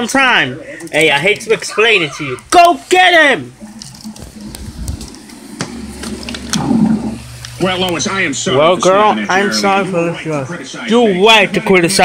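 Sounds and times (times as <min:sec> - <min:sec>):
low steady hum: 0:03.2 - 0:11.2.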